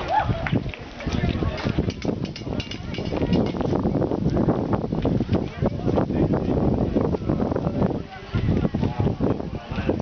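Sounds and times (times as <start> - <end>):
spectators chatting faintly: 0.0 - 10.0
wind buffeting microphone: 0.0 - 10.0.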